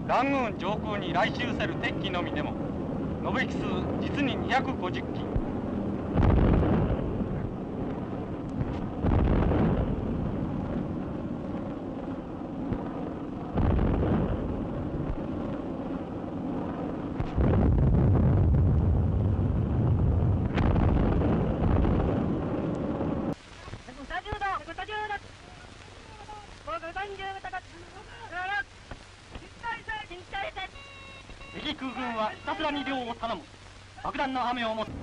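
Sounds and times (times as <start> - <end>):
continuous rumbling: 0.0 - 35.0
heavy explosions: 0.1 - 23.4, 34.8 - 35.0
anti-aircraft gunfire: 6.1 - 7.5, 8.6 - 10.8, 13.5 - 15.4, 20.2 - 23.2.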